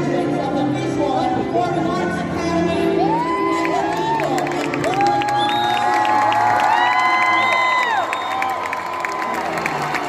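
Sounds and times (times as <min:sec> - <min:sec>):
crowd cheering and whooping: 0:03.0 - 0:10.0
scattered clapping: 0:03.9 - 0:10.0.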